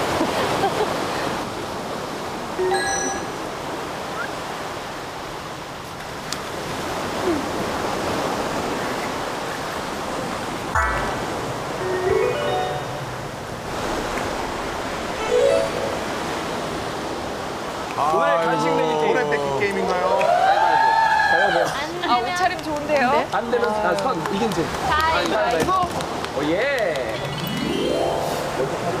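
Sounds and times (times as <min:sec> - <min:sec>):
surf noise: 0:00.0 - 0:22.4, 0:23.2 - 0:29.0
sharp hit: 0:10.8 - 0:12.0
short rising sound effects: 0:10.8 - 0:13.3, 0:15.2 - 0:16.6, 0:27.3 - 0:29.0.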